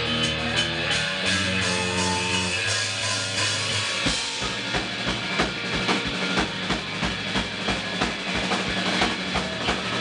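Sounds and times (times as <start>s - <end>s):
distorted electric guitars: 0.0s - 10.0s
drum beat: 0.0s - 10.0s.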